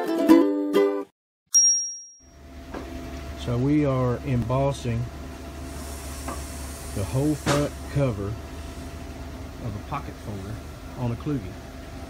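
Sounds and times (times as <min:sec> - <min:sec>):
bright bell ding: 0:01.5 - 0:02.4
printing press running: 0:02.6 - 0:12.0.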